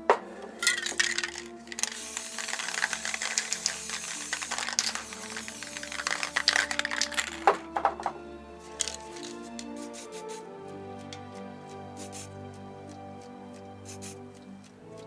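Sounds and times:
background music: 0.0s - 15.0s
spray paint cans hissing: 0.5s - 7.9s, 8.6s - 15.0s
sharp knocks: 7.6s - 8.2s.

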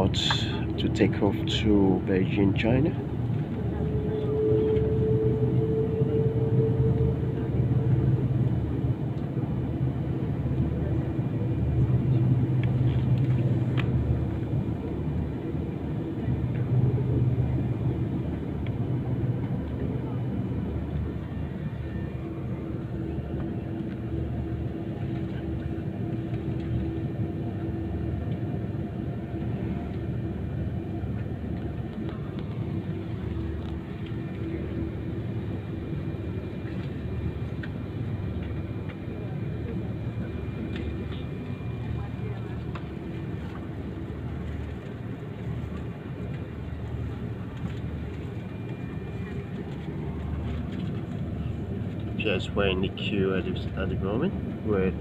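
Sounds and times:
jet engines idling: 0.0s - 55.0s.

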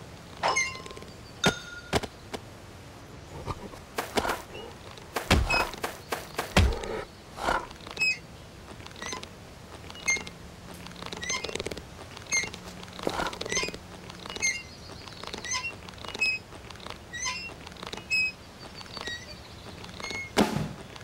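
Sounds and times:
high cartoon squeaks: 9.9s - 10.3s, 17.1s - 19.4s, 20.0s - 20.4s.

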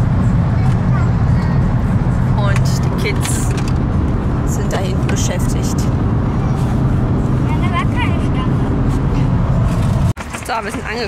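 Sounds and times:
car engine rumble and road noise: 0.0s - 11.0s.

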